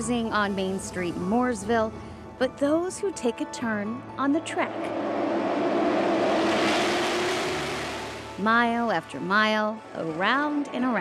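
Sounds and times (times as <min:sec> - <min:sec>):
race car engines passing: 0:04.2 - 0:08.8.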